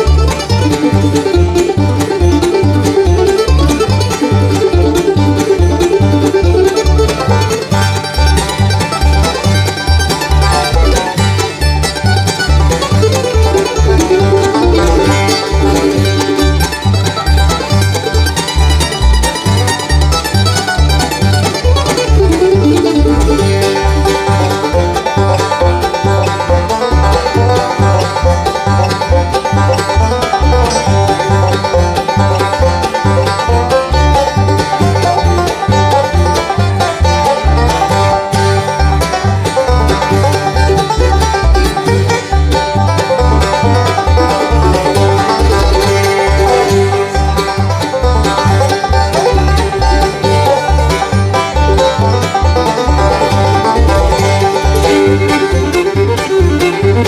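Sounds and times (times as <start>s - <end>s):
banjo: 0.0s - 57.0s
bluegrass band playing: 0.0s - 57.0s
fiddle: 0.0s - 57.0s
upright bass walking beat: 0.0s - 57.0s.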